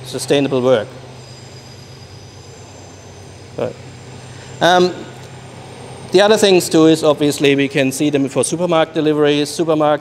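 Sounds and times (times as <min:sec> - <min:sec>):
man speaking: 0:00.0 - 0:00.9, 0:04.6 - 0:05.2, 0:06.1 - 0:10.0.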